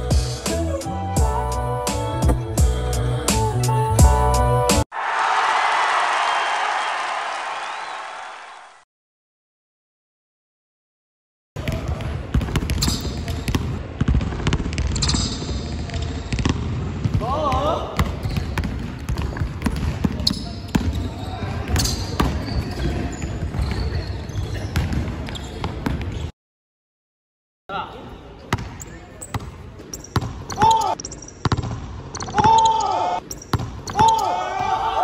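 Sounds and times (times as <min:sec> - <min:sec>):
basketball bouncing on hardwood floor: 0:11.6 - 0:15.2, 0:18.0 - 0:21.0, 0:31.4 - 0:31.8
shoes squeaking on floor: 0:12.8 - 0:13.5, 0:18.2 - 0:26.3, 0:28.7 - 0:34.3.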